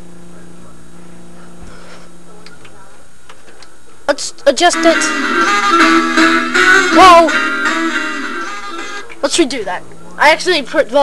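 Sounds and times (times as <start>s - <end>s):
buzzing hum and hiss: 0.0s - 11.0s.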